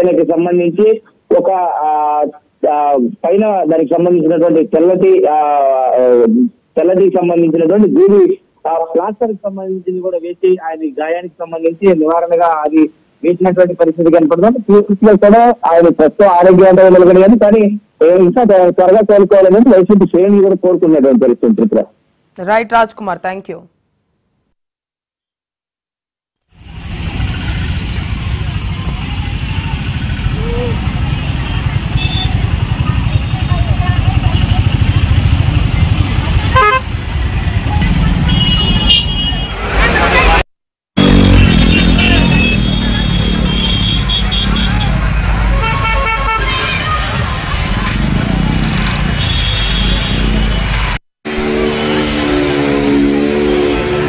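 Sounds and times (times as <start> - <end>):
street noise: 0.0 - 23.7, 26.5 - 54.0
road traffic rumble: 26.5 - 40.4, 41.0 - 54.0
motorcycle engines running: 26.6 - 38.8
vehicle horn toots: 31.9 - 32.6, 36.5 - 36.8, 38.2 - 39.7, 41.0 - 46.6, 49.2 - 50.3
crowd voices: 39.4 - 40.4.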